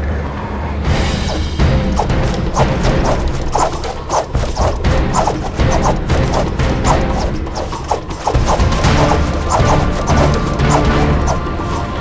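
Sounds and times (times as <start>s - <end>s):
background music: 0.4s - 12.0s.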